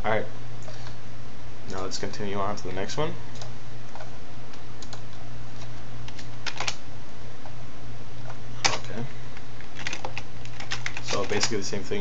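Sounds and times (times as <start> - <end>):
steady low hum: 0.0 - 12.0
keyboard and mouse clicks: 4.8 - 5.1.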